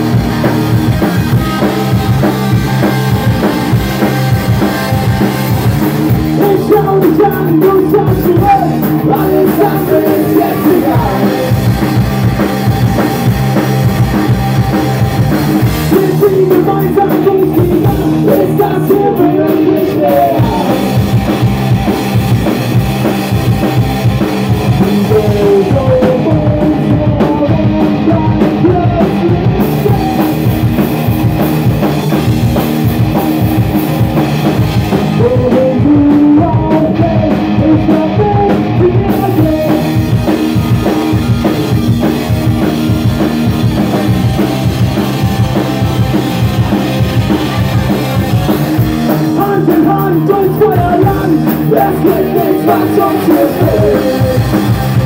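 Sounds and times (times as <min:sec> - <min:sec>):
drum kit beat: 0:00.0 - 0:55.0
electric bass: 0:00.0 - 0:55.0
electric guitar: 0:00.0 - 0:55.0.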